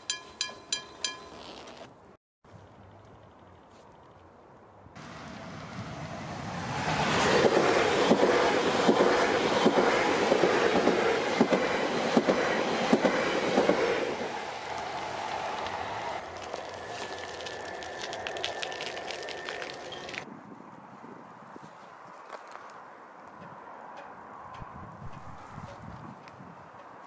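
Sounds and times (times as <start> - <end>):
train rumble: 5.0 - 20.3
train wheels clicking on rail joints: 7.2 - 20.3.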